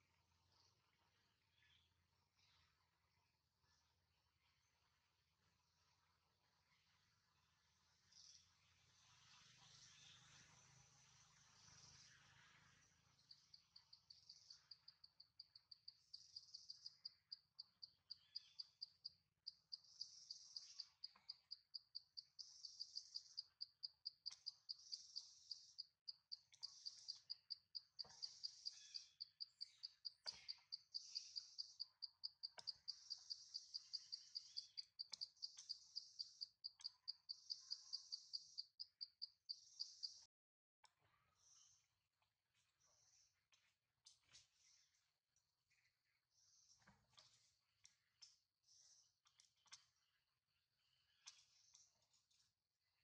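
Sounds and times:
faint clicks: 0:29.6 - 0:35.8, 0:51.2 - 0:52.4.

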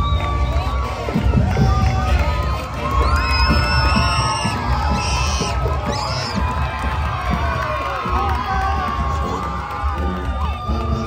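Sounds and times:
crowd cheering and yelling: 0:00.0 - 0:11.0
marching band with heavy drums: 0:00.0 - 0:11.0
high shrill screams: 0:02.9 - 0:06.4.

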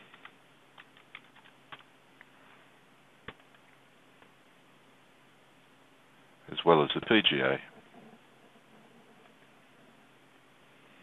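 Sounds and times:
faint keyboard clicks: 0:00.1 - 0:02.3.

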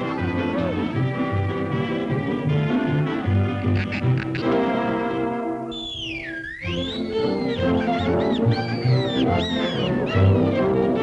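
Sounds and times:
orchestral cartoon music: 0:00.0 - 0:11.0
gliding high squeaks: 0:06.2 - 0:10.2.

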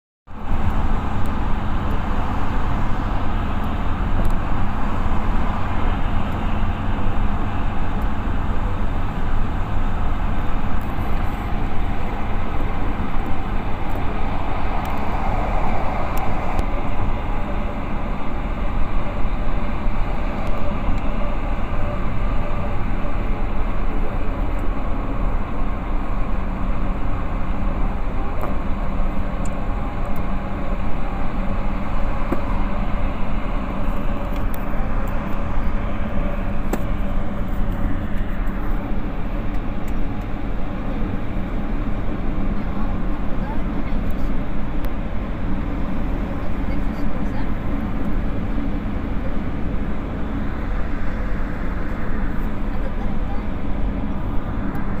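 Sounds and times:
vehicle interior rumble: 0:00.3 - 0:55.0.

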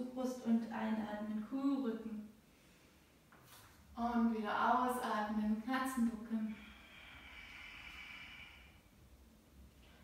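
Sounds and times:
woman exhaling slowly: 0:06.4 - 0:09.0.

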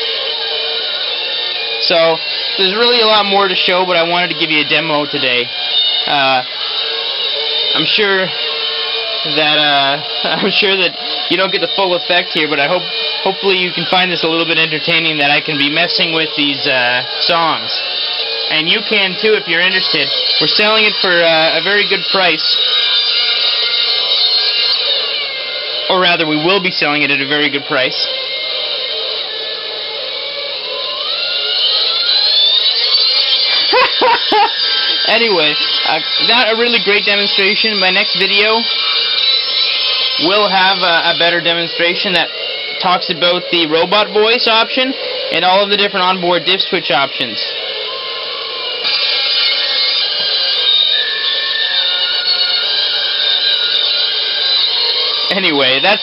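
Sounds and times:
distorted electronic music: 0:00.0 - 0:56.0
rising pitch: 0:00.0 - 0:56.0
short wavering pitched sounds: 0:00.0 - 0:56.0.

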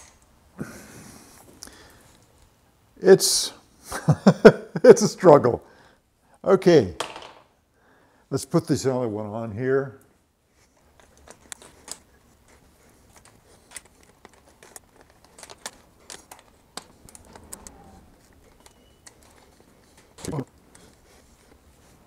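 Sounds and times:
clicks and metal rattles: 0:13.1 - 0:20.9.

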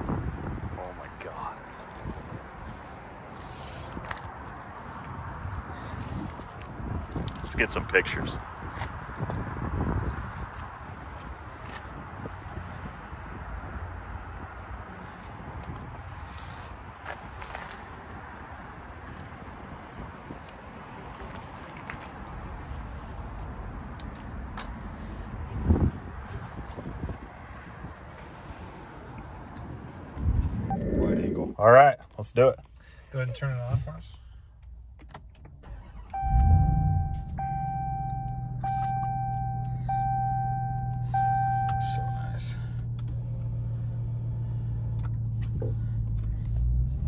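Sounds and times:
outdoor background noise: 0:00.0 - 0:47.0.

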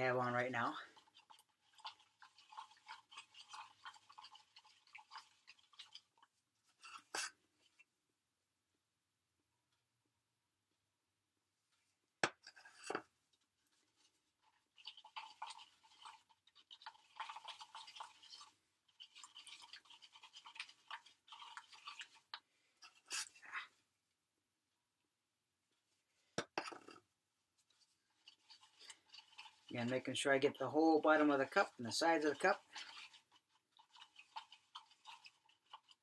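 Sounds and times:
stick scraping in a cup: 0:00.0 - 0:07.8, 0:12.4 - 0:13.0, 0:13.8 - 0:23.7, 0:27.7 - 0:36.0.

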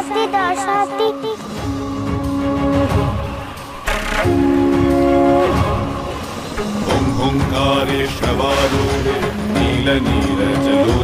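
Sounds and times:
held horn-like chord: 0:01.9 - 0:08.1
dramatic hit: 0:02.9 - 0:09.7.

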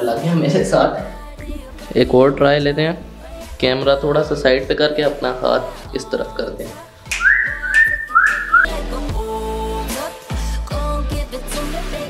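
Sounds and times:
background music: 0:00.0 - 0:12.0
whistled rising notes: 0:07.1 - 0:08.8.

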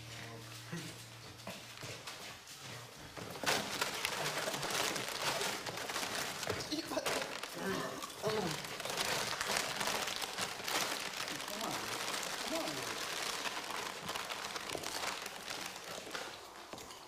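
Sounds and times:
plastic bags crinkling: 0:03.2 - 0:17.0.

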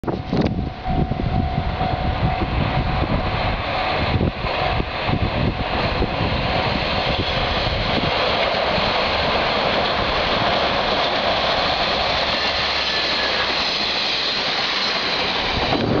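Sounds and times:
train rumbling over steel bridge: 0:00.0 - 0:16.0.

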